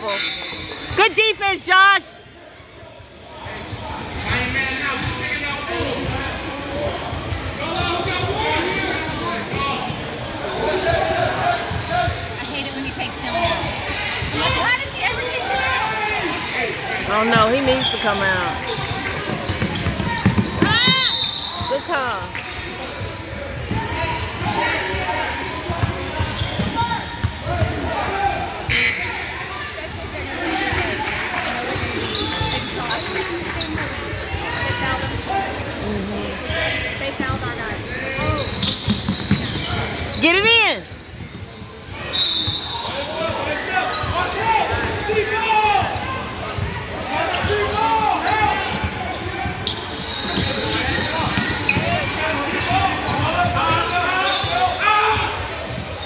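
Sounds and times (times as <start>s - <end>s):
crowd voices in gym: 0.0s - 56.0s
sneakers squeaking on court: 2.2s - 56.0s.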